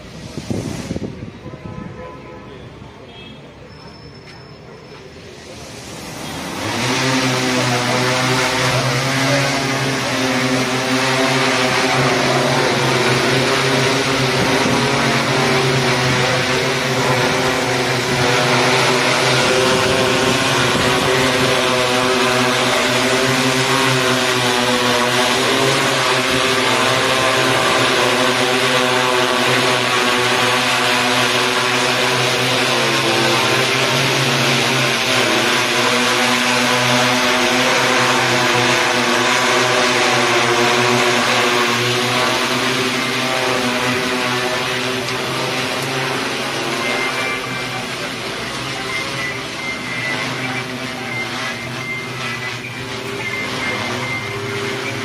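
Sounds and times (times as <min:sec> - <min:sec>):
drone propeller hum: 0:05.1 - 0:55.0.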